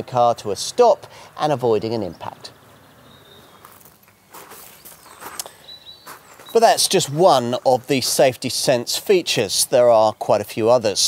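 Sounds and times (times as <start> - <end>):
faint bird chirps: 2.1 - 6.6
soft scuffs: 3.6 - 8.3.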